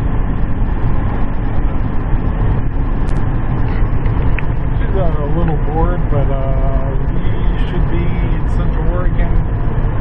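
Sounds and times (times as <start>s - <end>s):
road and engine noise in cab: 0.0s - 10.0s.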